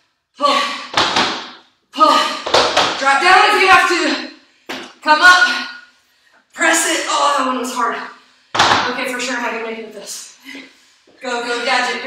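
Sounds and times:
sharp knocks: 0:00.9 - 0:01.6, 0:08.6 - 0:08.9.

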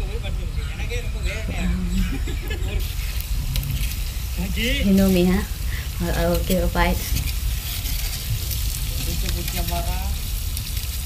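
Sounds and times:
fish sizzling in hot oil: 0:02.4 - 0:11.0.

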